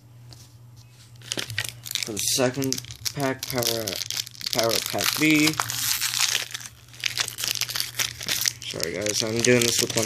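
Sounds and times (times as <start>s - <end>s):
card pack wrapper crinkling: 1.2s - 10.0s.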